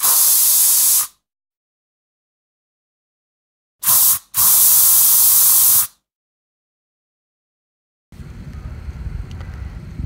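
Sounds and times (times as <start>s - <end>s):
spray paint hissing: 0.0s - 1.2s, 3.8s - 6.0s.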